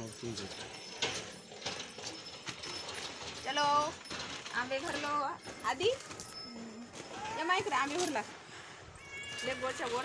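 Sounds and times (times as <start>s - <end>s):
voices: 2.1s - 8.4s, 9.0s - 10.0s.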